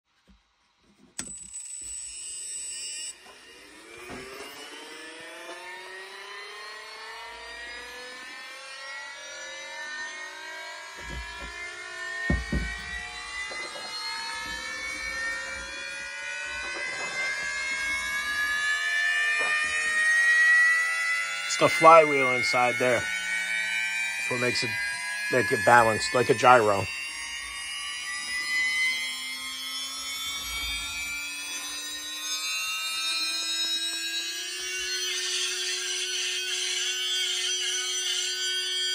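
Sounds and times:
flywheel motor whine rising: 1.2s - 38.9s
high steady tone: 12.3s - 38.4s.

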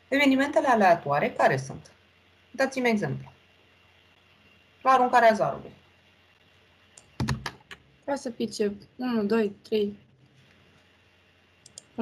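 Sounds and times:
keyboard keystroke clicks: 7.0s - 7.8s.

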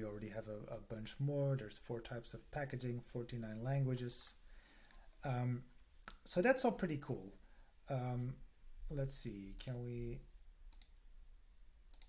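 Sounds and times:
computer mouse clicks: 10.7s - 11.0s.

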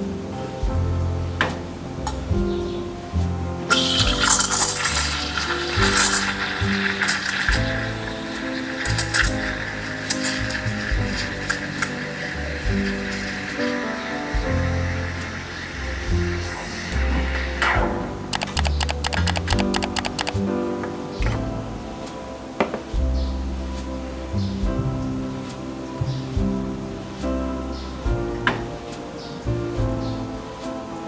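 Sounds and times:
background music: 0.0s - 31.0s
steam wand hissing: 3.7s - 20.3s.

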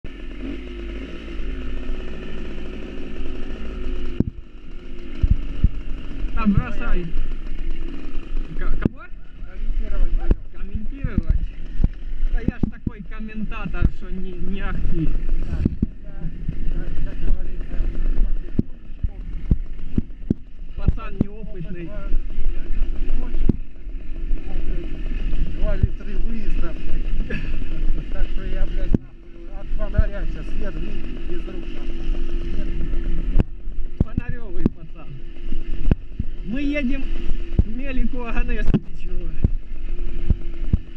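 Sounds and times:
motorcycle engine running: 0.0s - 40.9s
wind rumble on microphone: 5.1s - 6.6s, 10.1s - 21.4s.

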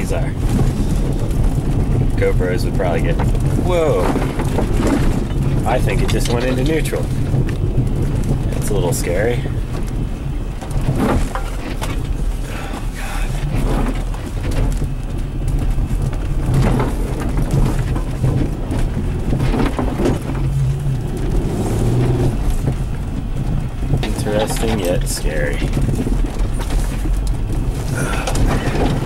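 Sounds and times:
car engine drone: 0.0s - 29.0s
suspension knocks and thuds: 0.0s - 29.0s.

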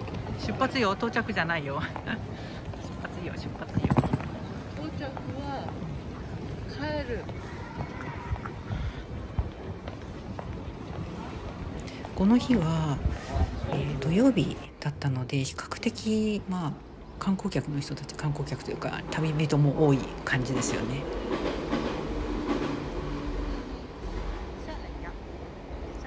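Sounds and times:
terminal hall rumble and hiss: 0.0s - 26.0s.

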